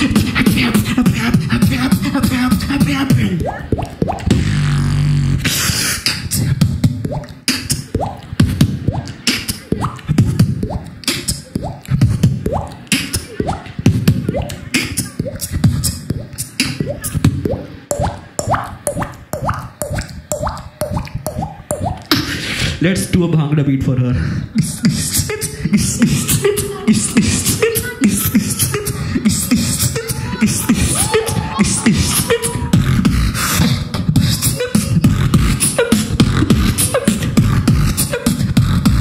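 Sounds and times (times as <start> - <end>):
beatboxing into microphone: 0.0 - 39.0.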